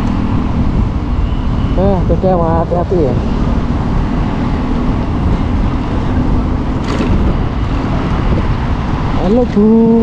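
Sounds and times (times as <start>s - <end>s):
wind and road rumble: 0.0s - 10.0s.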